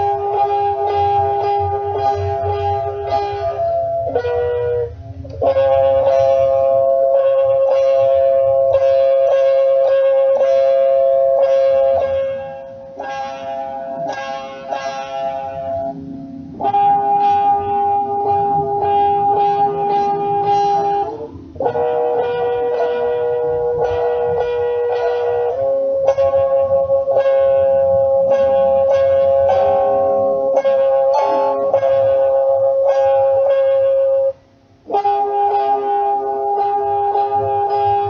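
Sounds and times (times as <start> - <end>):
plucked string instrument: 0.0 - 38.0.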